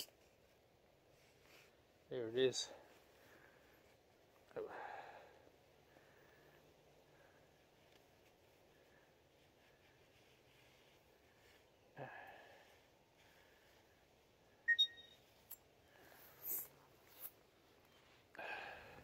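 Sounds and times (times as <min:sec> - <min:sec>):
soft handling noise: 0:00.0 - 0:04.5, 0:06.4 - 0:12.0, 0:15.2 - 0:18.4.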